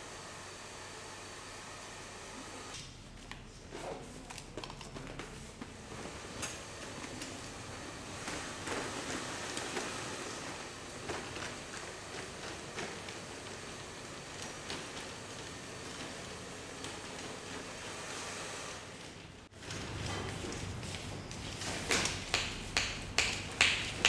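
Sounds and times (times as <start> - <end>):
shop room noise hiss: 0.0 - 24.0.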